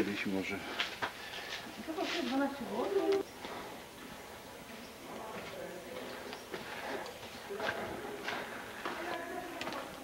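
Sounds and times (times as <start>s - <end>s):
people talking faintly: 4.5s - 10.0s.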